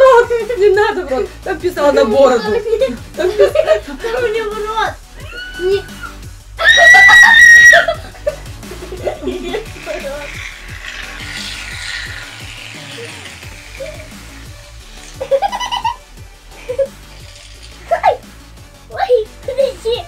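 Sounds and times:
background music with beat: 0:00.0 - 0:20.0
people laughing: 0:02.8 - 0:04.7, 0:06.6 - 0:10.2, 0:15.1 - 0:17.0
aerosol can spraying hiss: 0:07.8 - 0:18.7.

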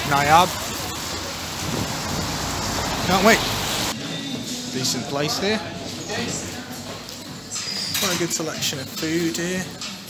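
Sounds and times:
tyres swishing on wet road: 0:00.0 - 0:04.0.

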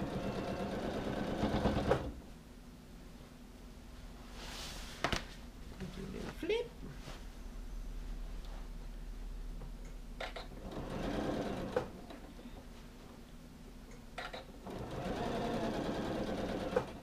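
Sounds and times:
sewing machine stitching: 0:00.0 - 0:02.2, 0:10.2 - 0:12.1, 0:14.2 - 0:17.0.

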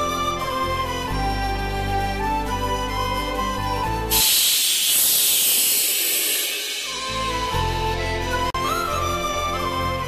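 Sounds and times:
pressure cooker steam hissing: 0:04.1 - 0:07.5.

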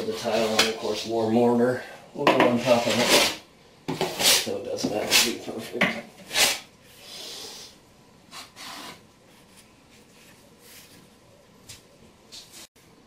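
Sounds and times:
trowel scraping mortar: 0:02.5 - 0:05.4, 0:06.2 - 0:07.4
faint handling sounds: 0:09.2 - 0:12.7.

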